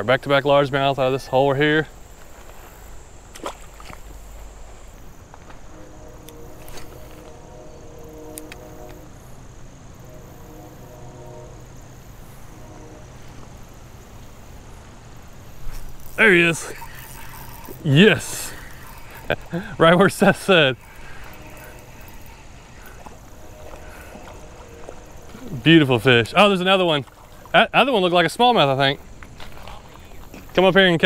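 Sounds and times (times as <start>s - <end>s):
fishing reel gears whining: 15.2s - 27.6s.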